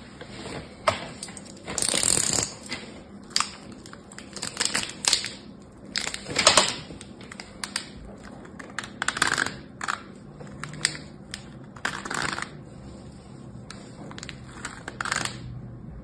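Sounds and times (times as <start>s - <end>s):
plastic wrapper crinkling: 1.4s - 12.6s.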